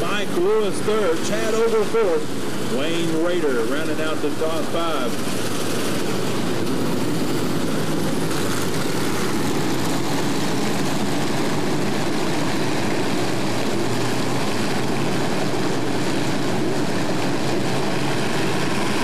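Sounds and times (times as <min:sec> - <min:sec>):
race car engines droning: 0:00.0 - 0:19.0.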